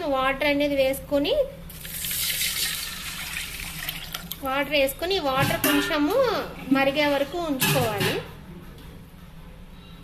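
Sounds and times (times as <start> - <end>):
water pouring into metal pot: 1.7 - 4.4.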